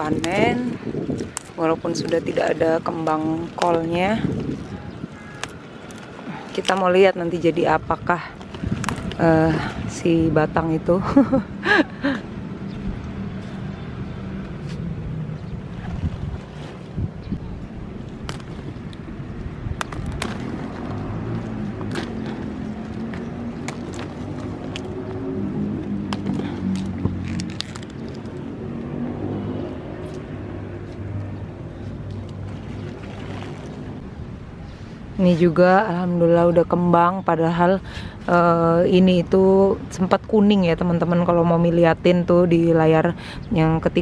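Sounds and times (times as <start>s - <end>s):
clicks and rustles of plants: 0.0s - 10.1s, 18.0s - 19.1s, 19.7s - 28.9s, 31.7s - 34.0s.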